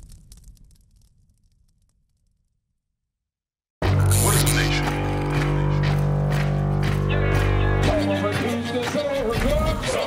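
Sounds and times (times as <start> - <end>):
low music drone: 3.8 - 10.0.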